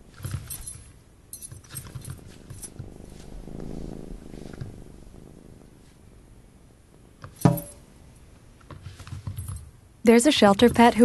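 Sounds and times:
collar tag jingle: 0.1s - 2.8s, 7.4s - 7.8s.

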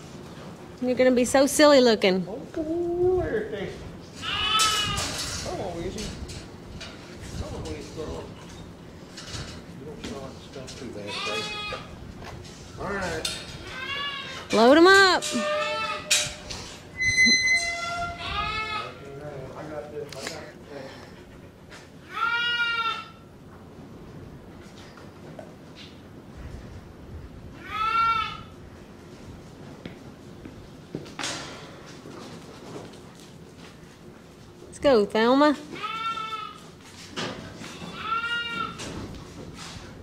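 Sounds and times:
goat bleating: 4.2s - 5.2s, 11.0s - 11.9s, 13.6s - 14.6s, 15.2s - 16.2s, 17.3s - 19.1s, 22.0s - 23.2s, 27.6s - 28.5s, 35.7s - 36.7s, 37.6s - 38.8s
thin high-pitched squeal: 15.2s - 18.9s.

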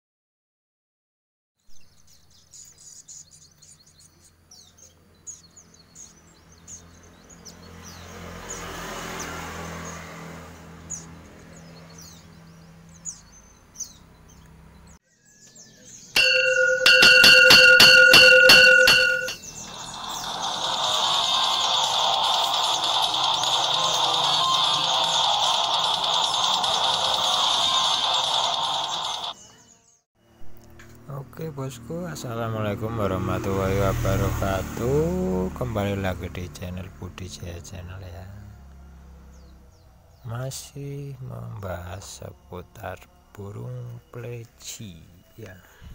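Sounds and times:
birds chirping: 1.6s - 30.0s, 30.6s - 45.9s
chiming ding jingle: 16.2s - 19.4s
low hum: 16.2s - 23.8s
steady hissing: 19.6s - 29.3s.

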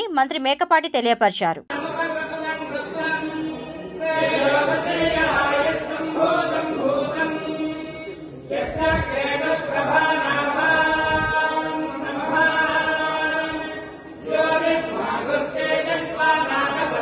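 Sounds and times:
men chanting together: 1.7s - 17.0s.

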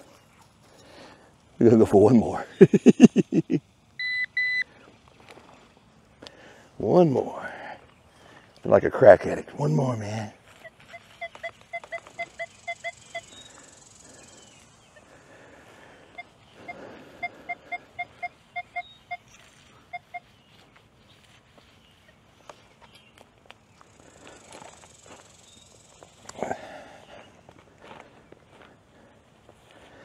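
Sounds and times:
rustle: 0.0s - 30.0s
metal detector beeps: 4.0s - 4.8s, 10.5s - 14.3s, 16.1s - 20.5s.

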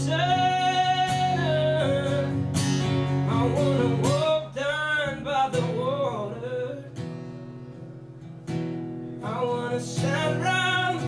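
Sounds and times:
man singing: 0.0s - 7.0s, 9.2s - 11.0s
strummed acoustic guitar: 0.0s - 11.0s.

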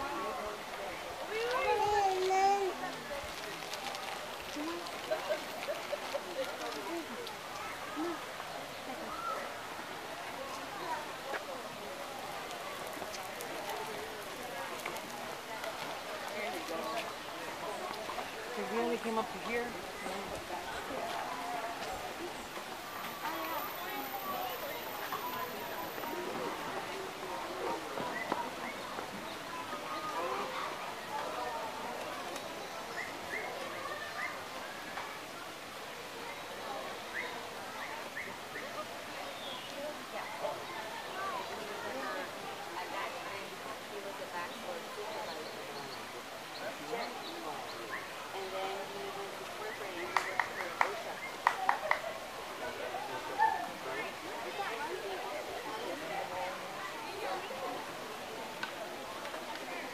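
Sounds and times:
people chattering: 0.0s - 59.9s.

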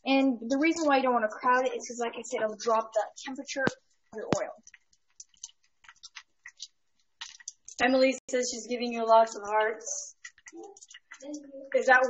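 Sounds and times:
frying oil crackling: 1.8s - 12.0s.

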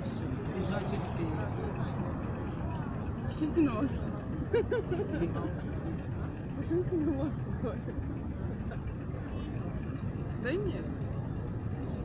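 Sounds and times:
faint voices: 0.0s - 12.0s
low engine rumble: 0.0s - 12.0s.

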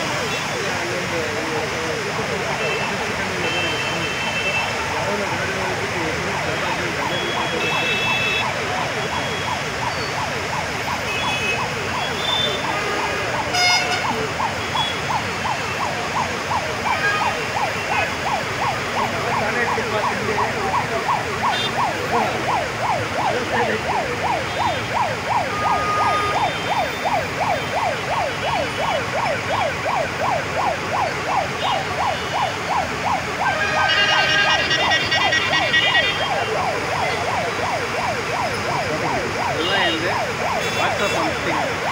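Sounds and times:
heavy road traffic: 0.0s - 41.9s
emergency siren yelping: 5.3s - 41.9s
car horns tooting: 7.1s - 8.4s, 11.1s - 15.1s, 25.5s - 26.8s, 33.4s - 37.2s.

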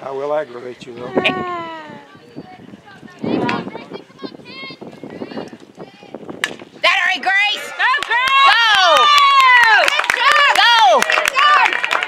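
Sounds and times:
bat striking softball: 6.3s - 6.7s
spectators yelling and cheering: 6.8s - 12.0s
clapping: 7.9s - 12.0s.

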